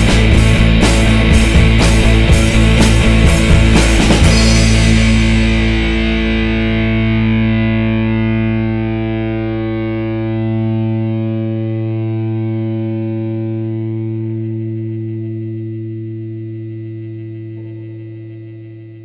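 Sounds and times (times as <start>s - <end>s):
distorted electric guitar chord ringing: 0.0s - 19.0s.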